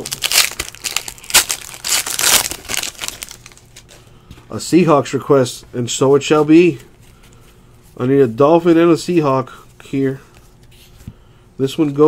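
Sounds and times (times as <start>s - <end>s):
foil wrapper crinkling: 0.0s - 4.0s.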